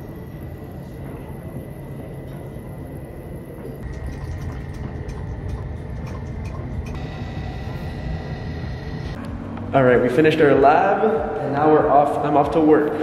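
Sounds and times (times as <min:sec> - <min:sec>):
fume hood and vacuum rumble: 0:00.0 - 0:13.0
thin constant whine: 0:00.0 - 0:13.0
liquid trickling through funnel: 0:03.8 - 0:06.9.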